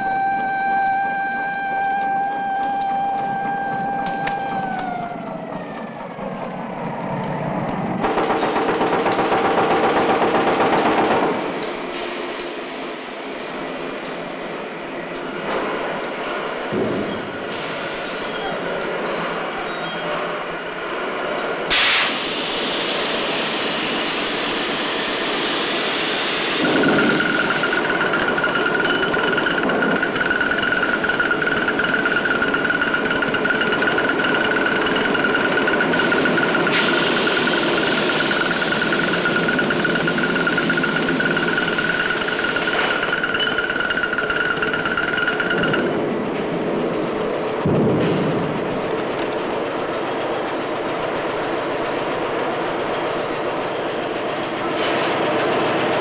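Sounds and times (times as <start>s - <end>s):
high steady whine: 0.0s - 9.4s, 21.6s - 54.6s
vehicle rumble: 0.4s - 9.4s.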